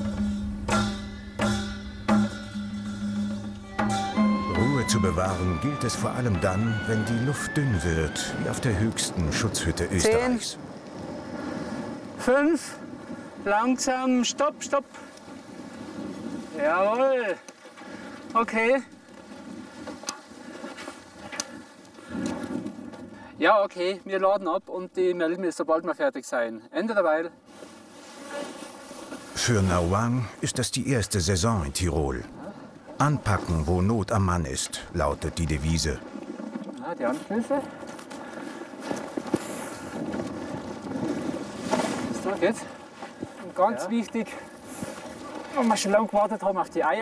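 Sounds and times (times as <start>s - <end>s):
sharp knock: 0.2s - 4.2s
wind buffeting microphone: 2.9s - 13.8s, 37.7s - 43.4s.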